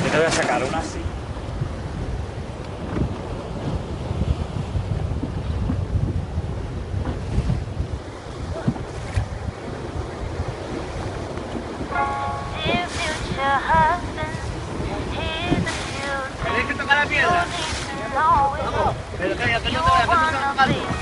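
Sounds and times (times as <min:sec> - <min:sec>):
choppy sea water: 0:00.0 - 0:21.0
wind buffeting microphone: 0:00.0 - 0:21.0.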